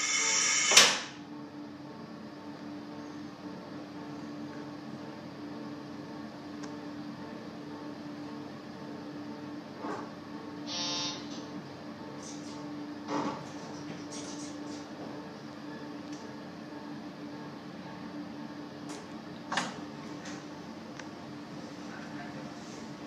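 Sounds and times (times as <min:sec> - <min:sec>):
air hissing: 0:00.0 - 0:01.1
train low hum: 0:01.2 - 0:14.0.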